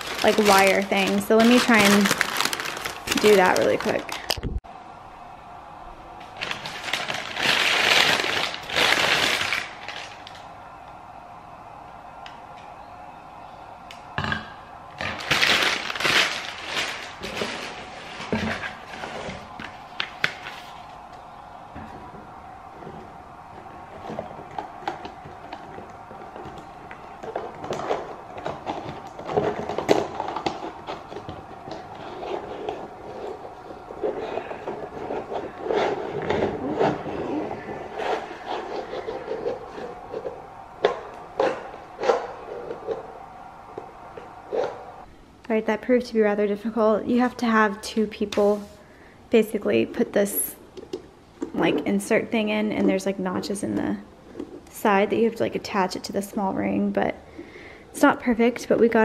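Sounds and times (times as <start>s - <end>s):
paper crinkling and rustling: 0.0s - 4.4s, 6.2s - 10.5s, 14.9s - 21.2s, 23.6s - 43.0s.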